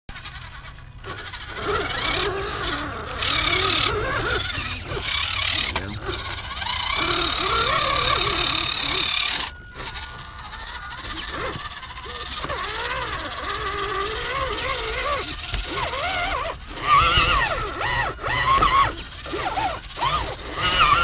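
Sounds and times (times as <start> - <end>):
electric motor whining: 0.1 - 21.0.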